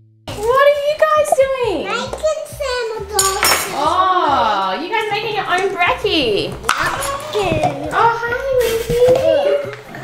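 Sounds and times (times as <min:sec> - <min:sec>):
cutlery clink: 0:03.2 - 0:03.9.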